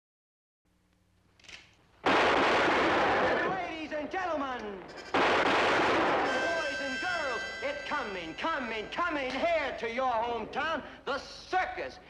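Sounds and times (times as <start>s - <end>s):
pistol shots with echo: 2.0s - 3.8s, 5.1s - 6.9s.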